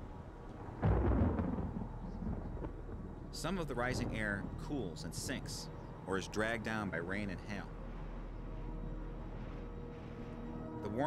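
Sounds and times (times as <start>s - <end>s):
thunder rumbling: 0.6s - 5.8s.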